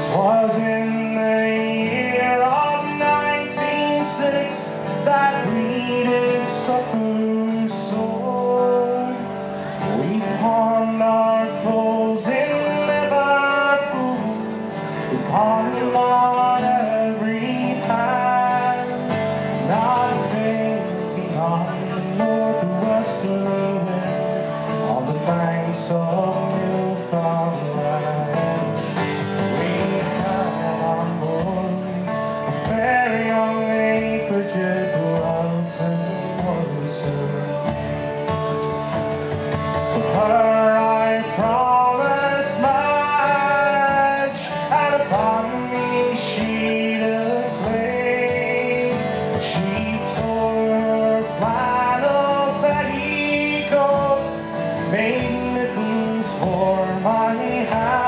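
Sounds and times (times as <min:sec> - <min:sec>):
man singing: 0:00.0 - 0:38.6, 0:39.2 - 0:58.0
acoustic guitar strumming: 0:00.0 - 0:58.0.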